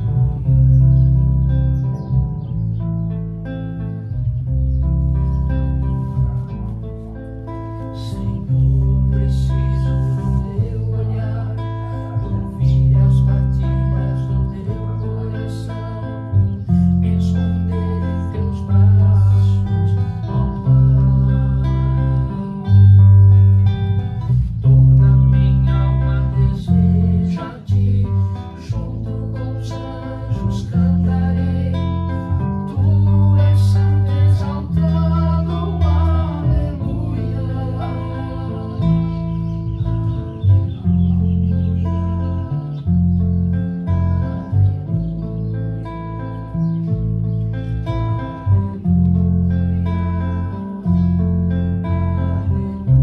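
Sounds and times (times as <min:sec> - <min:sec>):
acoustic guitar: 0:00.0 - 0:53.0
electric bass notes: 0:00.0 - 0:53.0.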